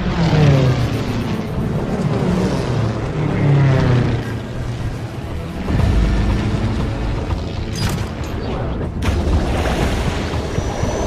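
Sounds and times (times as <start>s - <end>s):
propeller plane engines droning: 0.0s - 11.0s.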